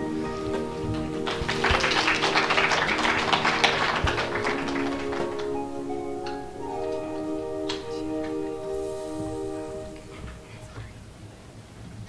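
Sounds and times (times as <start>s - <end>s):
audience applauding: 0.0s - 8.8s
held musical tones: 0.0s - 11.2s.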